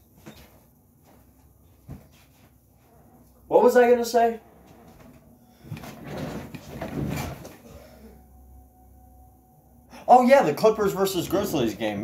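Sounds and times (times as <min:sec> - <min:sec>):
low room hum: 0:00.0 - 0:12.0
person moving in upholstered chair: 0:04.5 - 0:07.9.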